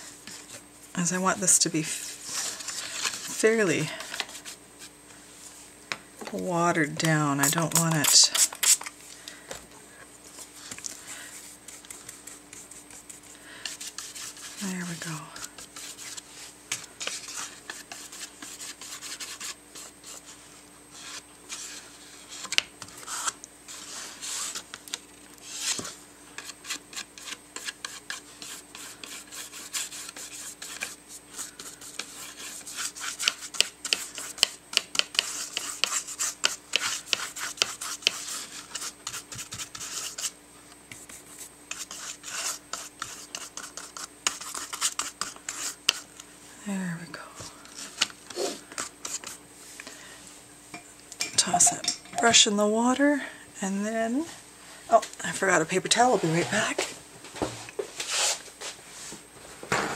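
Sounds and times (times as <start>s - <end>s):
paintbrush scrubbing paper: 0.3s - 4.9s, 10.4s - 24.7s, 25.4s - 46.1s, 47.8s - 49.4s.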